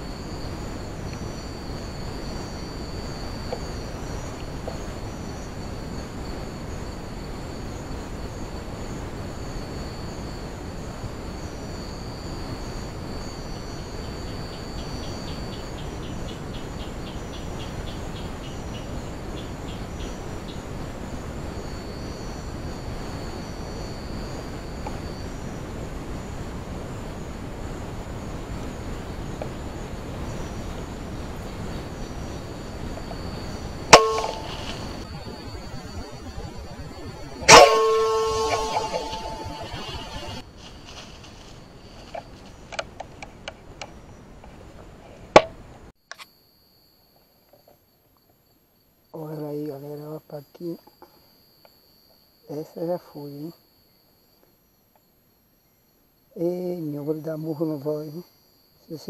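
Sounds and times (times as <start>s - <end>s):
night insects calling: 0.0s - 44.8s, 48.2s - 59.0s
background hiss: 0.0s - 45.9s
fast ticking trill: 33.9s - 40.4s.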